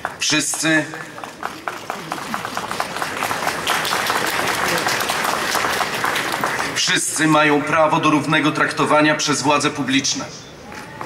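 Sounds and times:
crowd applauding: 0:00.0 - 0:07.0.

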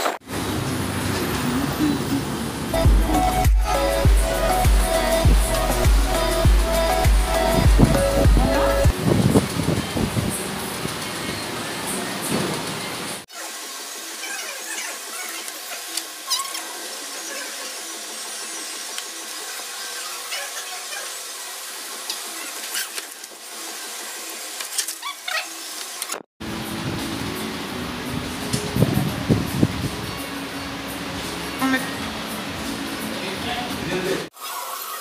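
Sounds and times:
fan-like hum: 0:00.3 - 0:34.3
faint background music: 0:27.0 - 0:34.3.

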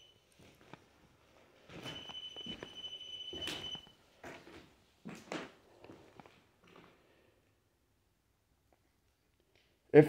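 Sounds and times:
soft knocks or footsteps: 0:01.7 - 0:07.0
high-pitched sensor beep: 0:01.8 - 0:03.9.

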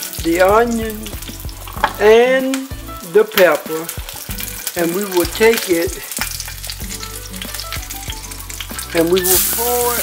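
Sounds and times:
sausage sizzling in a skillet: 0:00.0 - 0:10.0.

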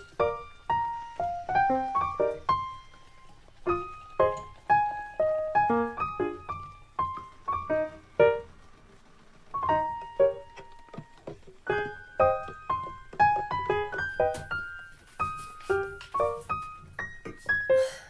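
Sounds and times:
piano music: 0:00.0 - 0:18.0.

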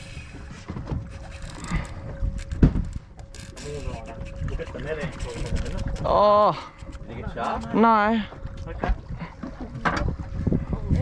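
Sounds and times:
wind rumbling on microphone: 0:00.0 - 0:11.0
waves slapping against boat: 0:06.8 - 0:11.0.

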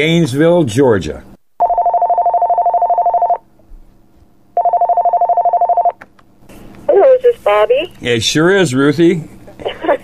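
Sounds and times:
telephone ringing: 0:01.6 - 0:03.4, 0:04.6 - 0:06.0.

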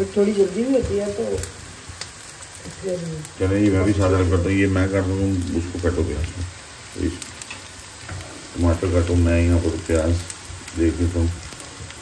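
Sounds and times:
onions sizzling in oil: 0:00.0 - 0:12.0
spatula stirring in pan: 0:00.0 - 0:12.0.

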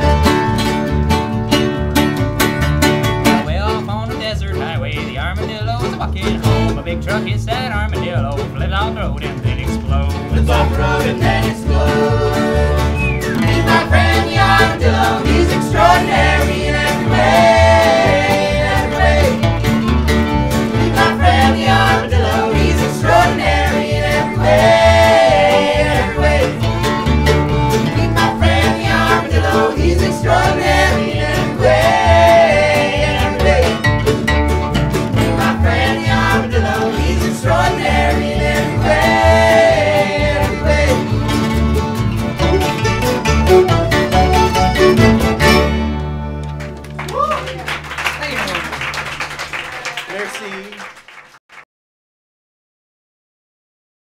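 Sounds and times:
plucked bass beat: 0:00.0 - 0:47.3
acoustic string band playing: 0:00.0 - 0:49.4.

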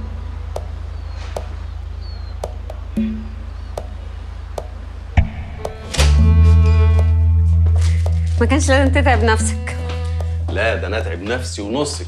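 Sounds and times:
low bass drone: 0:00.0 - 0:12.0
soft ticking beat: 0:00.0 - 0:12.0
plucked note: 0:02.4 - 0:11.5
sharp hit: 0:05.2 - 0:06.6.

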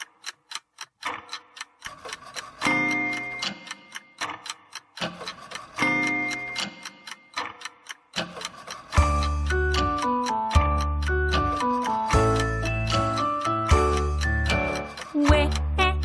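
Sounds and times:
clock ticking: 0:00.0 - 0:16.0.

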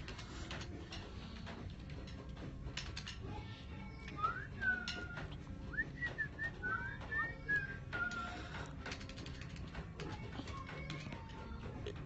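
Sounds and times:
person whistling a tune: 0:04.0 - 0:08.5.

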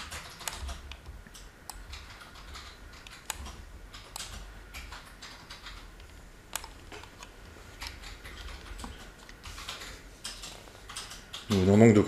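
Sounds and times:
computer mouse clicks: 0:00.0 - 0:11.8
low steady hum: 0:00.0 - 0:12.0.

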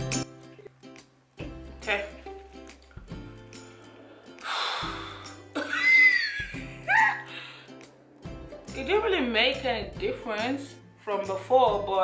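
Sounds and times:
music with sustained notes: 0:00.0 - 0:12.0
woman exhaling breathily: 0:04.3 - 0:05.4, 0:07.2 - 0:07.8.

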